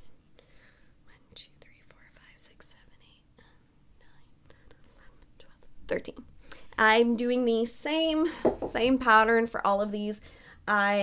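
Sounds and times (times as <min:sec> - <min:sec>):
woman whispering: 0:01.0 - 0:06.2.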